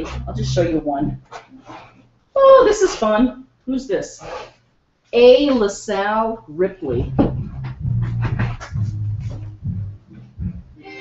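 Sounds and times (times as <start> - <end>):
low rumble: 0.0 - 1.2, 6.9 - 10.8.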